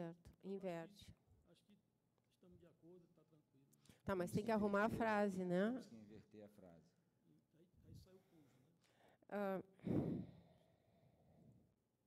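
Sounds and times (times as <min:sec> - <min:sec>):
breathy sigh: 0:09.8 - 0:11.5.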